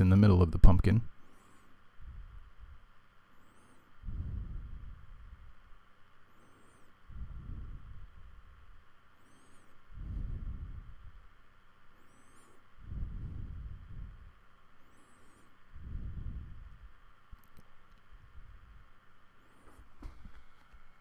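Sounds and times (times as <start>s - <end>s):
person breathing slowly: 1.2s - 17.0s, 18.2s - 20.5s.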